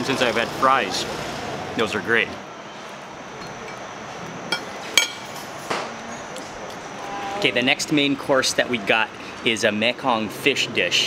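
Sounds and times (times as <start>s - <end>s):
fork clinking against plate: 3.4s - 3.8s, 4.5s - 5.4s.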